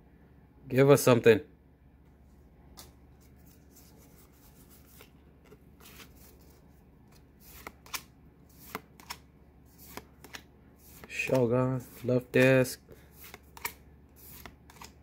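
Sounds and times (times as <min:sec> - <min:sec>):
trading cards being handled: 0:02.1 - 0:15.0
cards flicking and snapping: 0:07.1 - 0:15.0.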